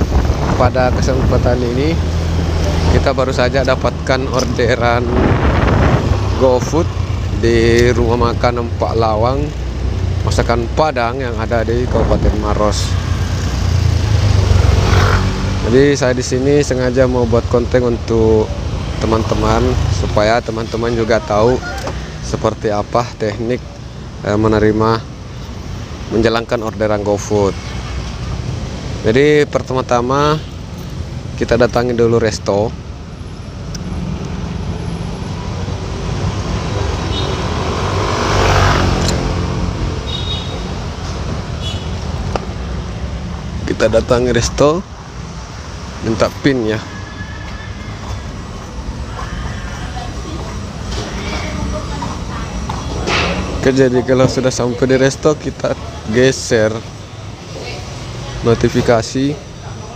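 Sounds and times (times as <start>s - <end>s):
road and traffic noise: 0.0s - 59.9s
vehicle engine humming: 0.0s - 59.9s.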